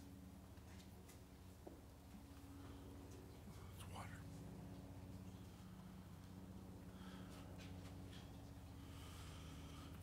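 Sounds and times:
low hum: 0.0 - 10.0
person whispering: 3.6 - 4.3.

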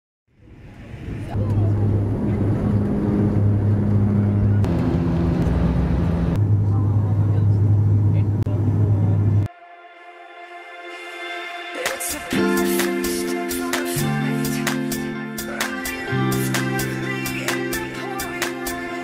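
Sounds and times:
airliner engines droning: 0.3 - 9.5.

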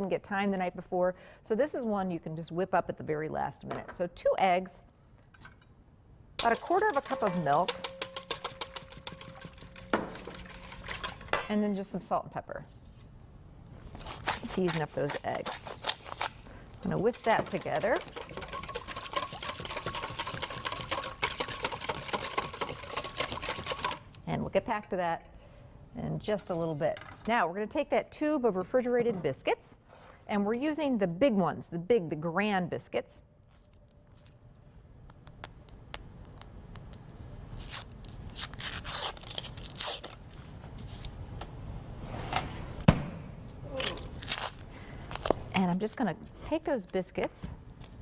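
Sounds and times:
whisk clicking against metal bowl: 6.4 - 11.4, 17.2 - 24.0
paper wrapper tearing: 13.9 - 16.5, 37.5 - 41.0, 43.9 - 44.6
tube bursting with a pop: 42.8 - 43.3.

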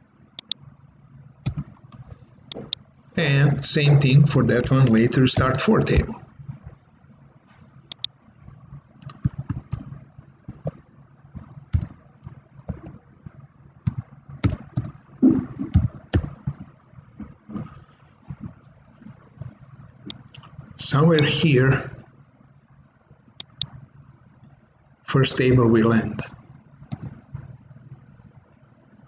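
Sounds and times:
keyboard typing: 0.4 - 0.7, 1.4 - 2.9, 7.9 - 8.2, 9.0 - 10.8, 11.4 - 12.0, 12.6 - 16.7, 23.4 - 23.8, 26.8 - 27.2
mouse clicking: 0.4 - 0.7, 1.4 - 2.9, 7.9 - 8.2, 9.0 - 9.9, 20.1 - 20.5, 23.4 - 23.8, 26.9 - 27.2.

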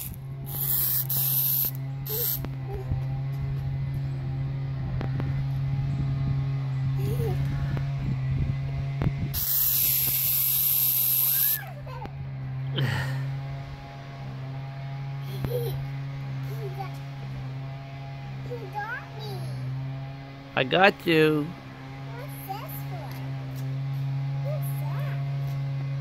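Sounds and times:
aerosol can spraying: 0.0 - 2.5, 9.4 - 11.6
steady low hum: 0.0 - 26.0.

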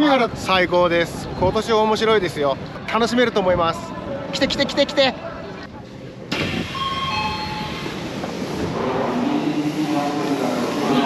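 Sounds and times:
train and station noise: 0.0 - 11.0.

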